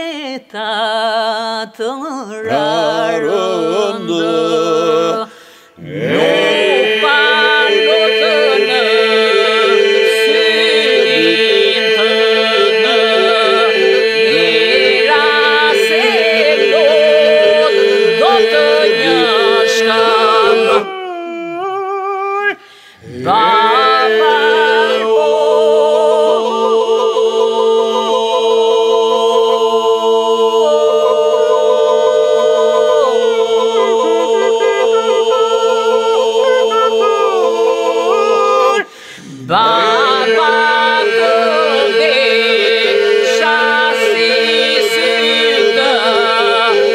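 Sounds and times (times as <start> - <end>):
solo voices singing melody: 0.0 - 46.9
group singing a drone: 2.4 - 21.0, 23.0 - 46.9.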